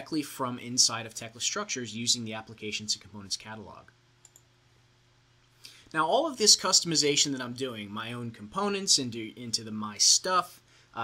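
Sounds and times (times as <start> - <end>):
faint short clicks: 4.2 - 4.5
man breathing and speaking: 5.4 - 6.0, 10.5 - 11.0.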